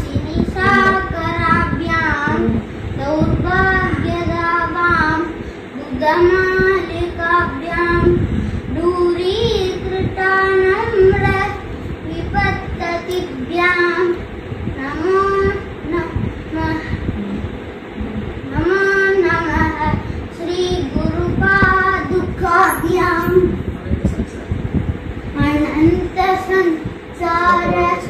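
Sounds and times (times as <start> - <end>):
child chanting devotional verses: 0.0 - 17.2, 18.2 - 23.6, 25.3 - 28.0.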